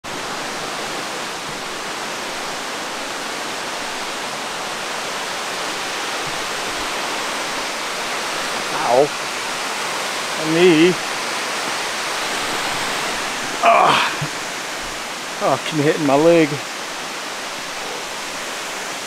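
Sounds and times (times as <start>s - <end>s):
waterfall over rocks: 0.0s - 19.0s.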